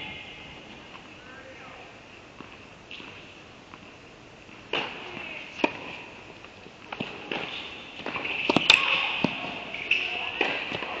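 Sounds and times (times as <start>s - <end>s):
racket hitting tennis ball: 4.6s - 6.1s, 6.9s - 11.0s.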